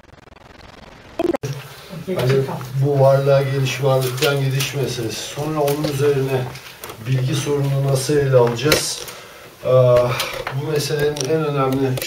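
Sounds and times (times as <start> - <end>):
low buzzing hum: 0.0 - 7.1
faint hiss: 1.0 - 12.0
man's voice: 9.6 - 12.0.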